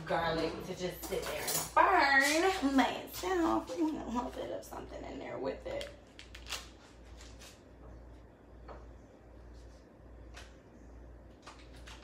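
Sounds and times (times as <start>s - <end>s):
low steady hum: 0.0s - 12.0s
paper wrapper crinkling: 5.9s - 7.6s.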